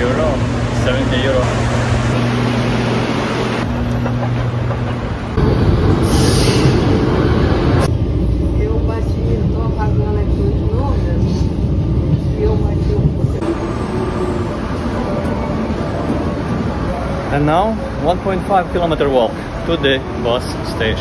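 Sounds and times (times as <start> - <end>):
metro train rumbling: 0.0 - 21.0.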